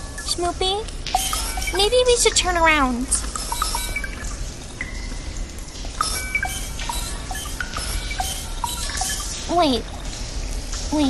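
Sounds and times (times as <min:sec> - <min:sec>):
water dripping: 0:00.0 - 0:11.0.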